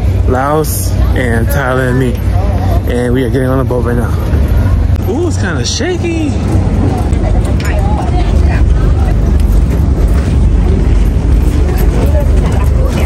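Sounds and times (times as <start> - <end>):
boat engine idling: 0.0 - 13.0.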